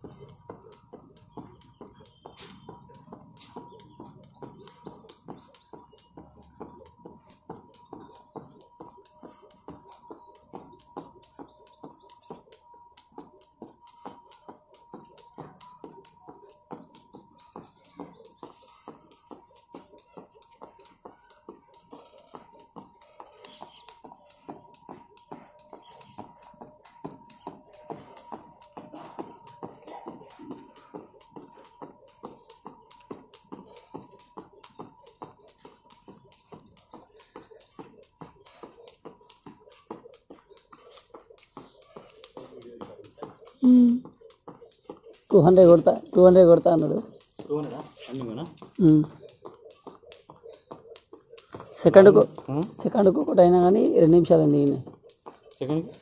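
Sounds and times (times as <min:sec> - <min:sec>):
skipping rope slapping paving: 0:00.0 - 0:56.0.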